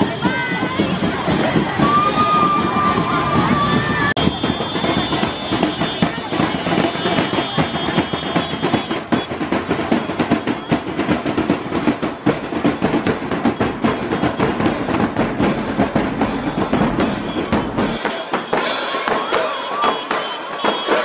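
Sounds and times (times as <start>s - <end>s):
marching band drums: 0.0s - 21.0s
people's voices: 0.0s - 21.0s.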